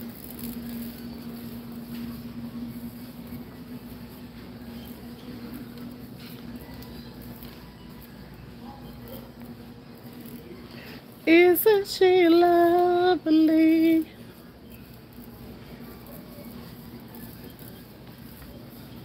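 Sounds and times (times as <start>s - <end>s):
steady low hum: 0.0s - 19.0s.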